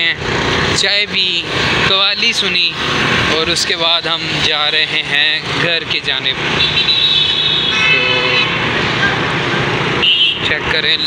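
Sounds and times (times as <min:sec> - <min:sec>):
road and wind noise: 0:00.0 - 0:11.0
vehicle horn: 0:06.6 - 0:08.7, 0:10.0 - 0:10.5.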